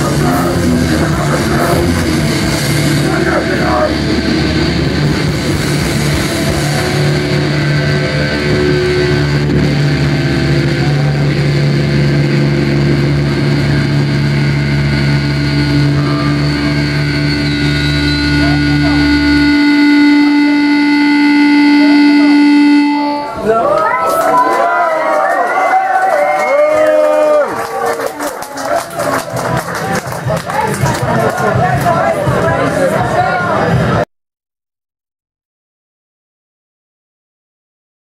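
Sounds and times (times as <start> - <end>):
low bass note: 0.0 - 23.7
electric guitar feedback drone: 0.0 - 34.0.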